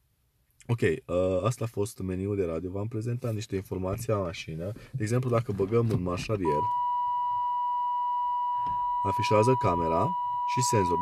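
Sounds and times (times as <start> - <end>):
reverse parking warning tone: 6.4 - 11.0.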